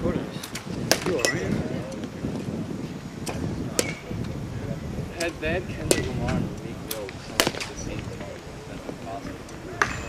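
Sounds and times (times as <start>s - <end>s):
background talk: 0.0s - 10.0s
baseball bats cracking balls: 0.4s - 2.1s, 3.2s - 4.3s, 5.2s - 10.0s.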